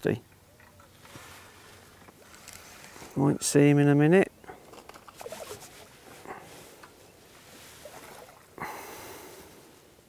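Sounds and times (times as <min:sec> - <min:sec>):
fish splashing at water surface: 0:07.8 - 0:09.0.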